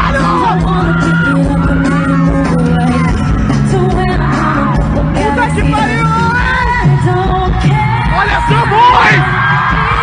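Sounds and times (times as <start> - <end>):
woman singing pop song: 0.0 - 10.0.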